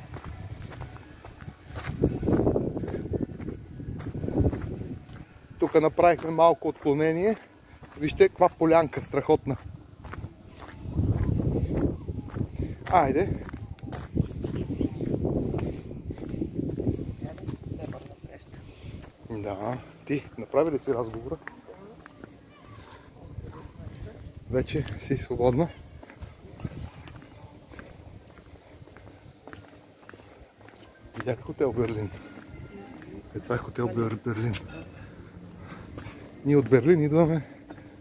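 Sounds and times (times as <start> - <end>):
footsteps on paving slabs: 0.0 - 38.0.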